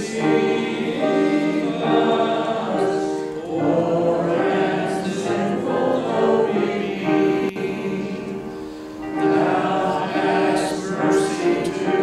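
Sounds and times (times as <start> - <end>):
congregation singing a hymn: 0.0 - 12.0
upright piano: 0.0 - 12.0.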